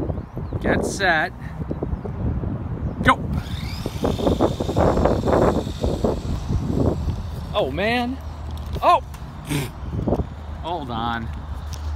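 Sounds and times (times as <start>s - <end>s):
electric motors whining: 3.3s - 8.8s.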